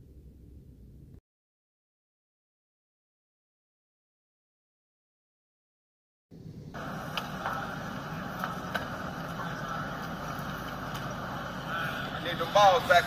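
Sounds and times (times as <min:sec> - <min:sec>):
indoor hiss and hum: 0:06.4 - 0:13.0
faint sharp clicks: 0:07.1 - 0:07.6.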